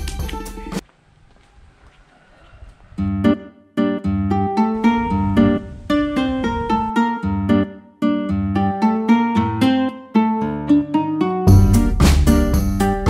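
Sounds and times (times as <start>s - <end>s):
background music: 0.0s - 0.8s, 3.4s - 13.0s
plucked guitar tune: 3.0s - 13.0s.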